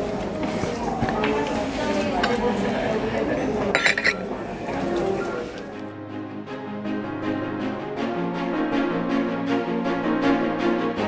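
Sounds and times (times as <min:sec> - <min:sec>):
background chatter: 0:00.0 - 0:05.9
cutlery clinking: 0:03.7 - 0:04.4
teacup and saucer clinking: 0:03.7 - 0:04.4.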